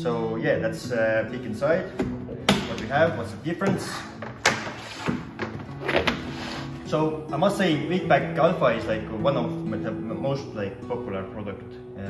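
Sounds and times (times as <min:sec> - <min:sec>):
background music: 0:00.0 - 0:12.0
plastic buckets and lids knocking: 0:01.9 - 0:06.4.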